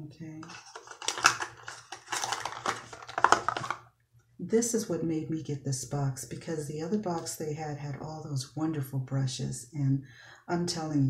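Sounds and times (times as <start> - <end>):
packaging rustling and crinkling: 0.4 - 3.9.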